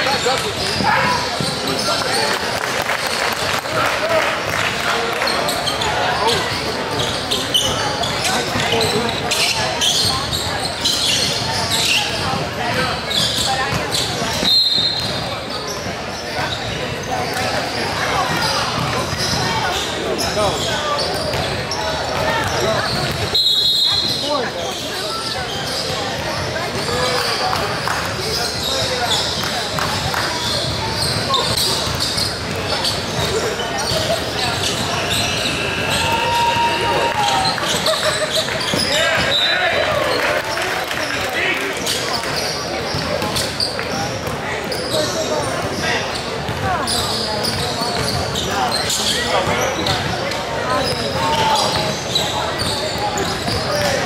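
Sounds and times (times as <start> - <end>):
echoing chatter: 0.0 - 54.0
sneakers squeaking: 0.0 - 54.0
basketball bouncing on court: 0.1 - 2.1, 12.1 - 19.8, 20.6 - 23.3, 25.8 - 35.5, 42.3 - 54.0.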